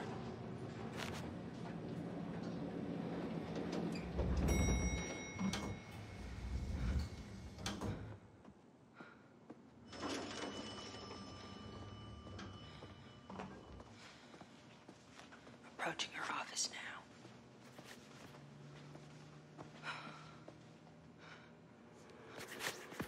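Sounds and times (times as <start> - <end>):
sliding doors: 0.0 - 8.3, 9.8 - 13.9
elevator low rumble: 0.0 - 8.9, 9.6 - 15.6.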